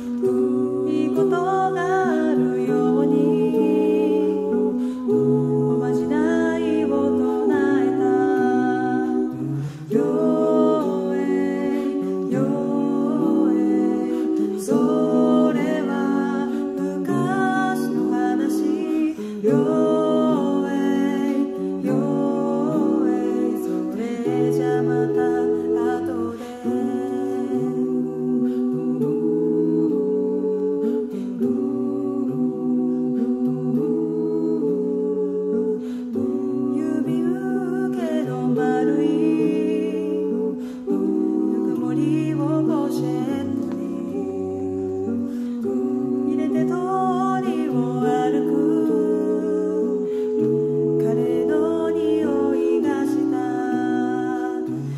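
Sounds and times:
a cappella group singing harmony: 0:00.0 - 0:54.9.

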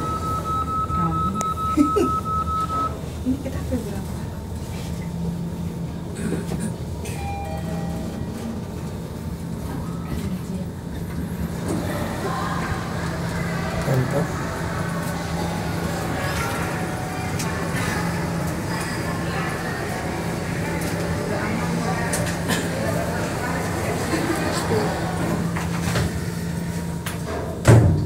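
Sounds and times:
steady high tone: 0:00.0 - 0:03.0
voices: 0:00.0 - 0:04.3, 0:10.1 - 0:26.9
elevator running with low hum: 0:00.0 - 0:28.0.

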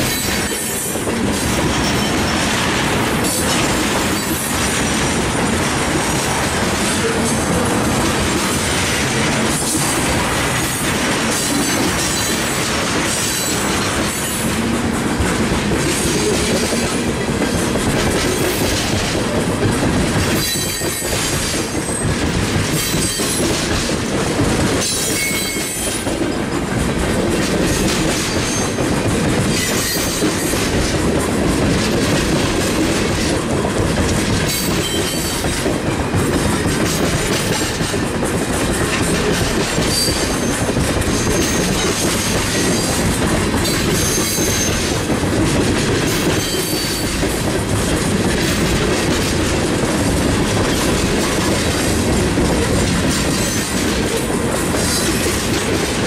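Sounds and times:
train wheels clattering over rails: 0:00.0 - 0:56.0.

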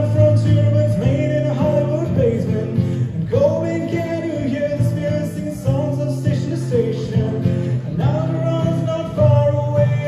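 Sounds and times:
man singing: 0:00.0 - 0:10.0
strummed acoustic guitar: 0:00.0 - 0:10.0.

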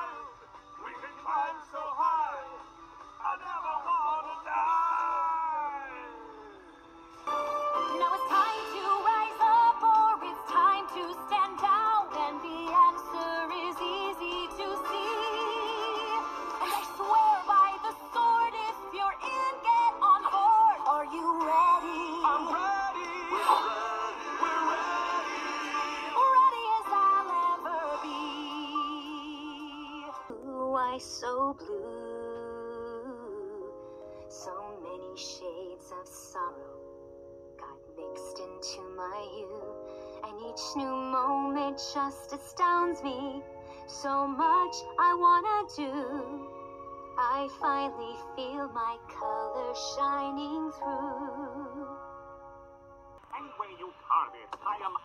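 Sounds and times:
voices singing and whooping: 0:00.0 - 0:06.6, 0:22.1 - 0:30.3
song through laptop speaker: 0:00.0 - 0:55.0.

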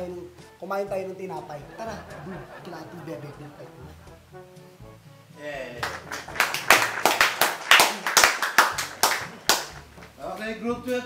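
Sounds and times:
people talking: 0:00.0 - 0:04.0, 0:05.4 - 0:07.3, 0:10.2 - 0:11.0
people clapping: 0:05.8 - 0:10.2.

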